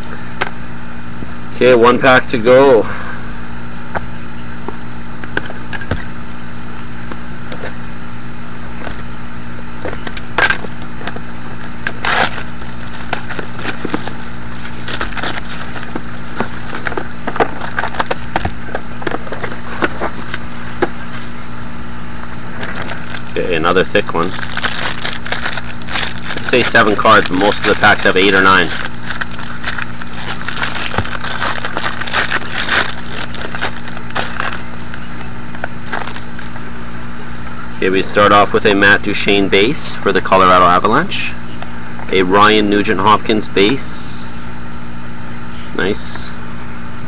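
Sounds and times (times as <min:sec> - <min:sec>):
room hum: 0:00.0 - 0:47.0
foil pack crackling: 0:09.7 - 0:21.6, 0:22.2 - 0:36.6.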